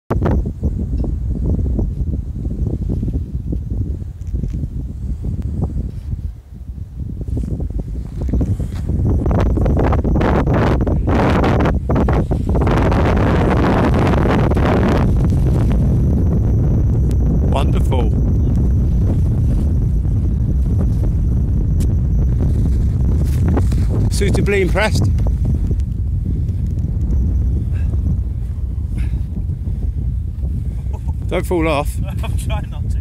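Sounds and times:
wind buffeting microphone: 0:00.1 - 0:33.0.

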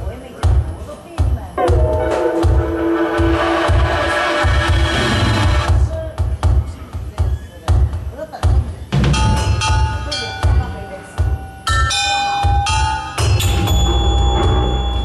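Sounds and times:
sustained bell-like tones: 0:01.6 - 0:05.7
drum kit playing: 0:01.6 - 0:06.4.

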